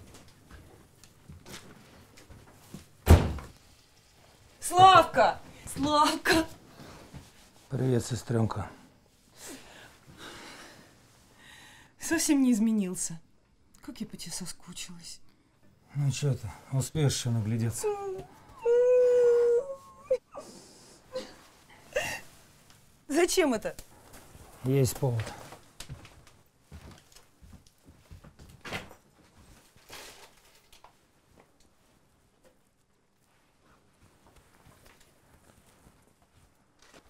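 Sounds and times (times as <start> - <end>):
woman crying: 17.8 - 20.5, 21.1 - 22.3.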